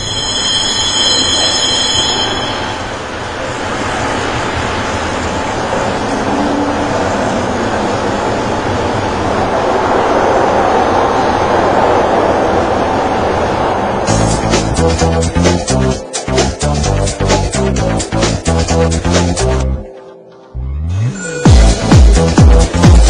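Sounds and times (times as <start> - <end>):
high squeal: 0.0 - 3.5, 20.9 - 21.5
funicular car rumbling: 0.0 - 19.6.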